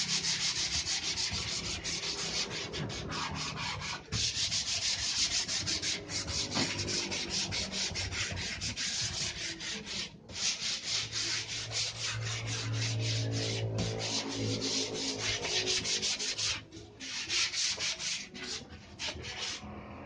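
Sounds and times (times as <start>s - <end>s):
sandpaper rubbing on wood: 0.0s - 19.7s.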